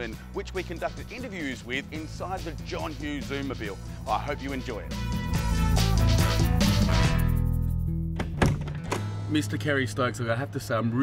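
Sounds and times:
background music: 0.0 - 11.0
van door latch thunk: 8.2 - 9.1.

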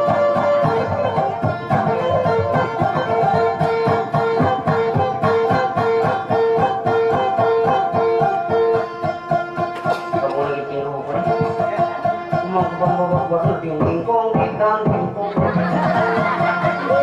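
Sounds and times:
plucked string music: 0.0 - 17.0.

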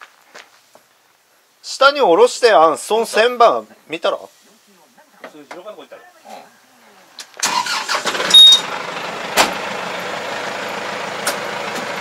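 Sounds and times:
tractor diesel engine starting and idling: 7.4 - 12.0
brief high beep: 8.3 - 8.6.

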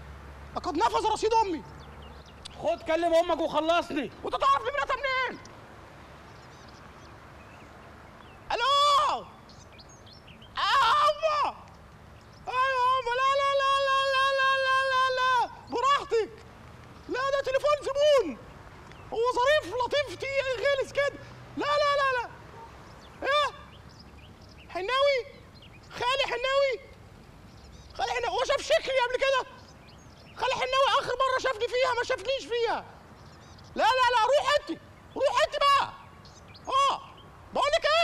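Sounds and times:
faint chirps: 5.1 - 13.8, 33.0 - 35.3
person shouting high-pitched: 8.5 - 9.3, 10.6 - 11.6, 12.5 - 16.3.

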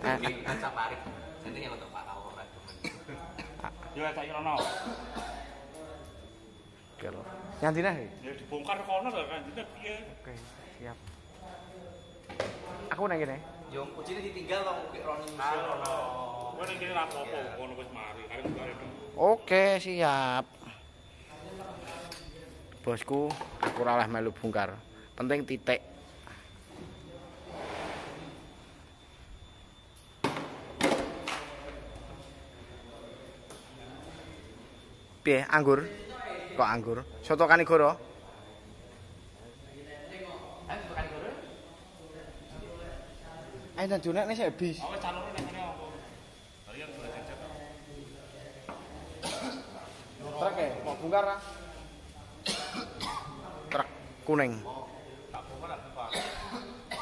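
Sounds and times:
man coughing: 2.8 - 3.8, 4.5 - 5.4, 49.2 - 49.8, 52.4 - 53.4, 56.1 - 57.0.

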